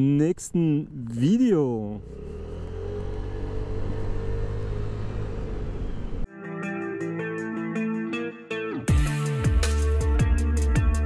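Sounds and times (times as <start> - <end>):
deep rumble of riding noise: 1.8 - 6.3
scooter engine whine: 2.0 - 6.3.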